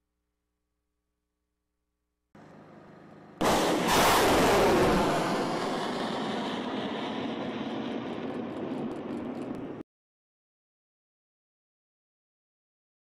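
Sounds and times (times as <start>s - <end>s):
rocket motor hiss: 3.4s - 8.5s
rocket launch blast and roar: 3.4s - 9.8s.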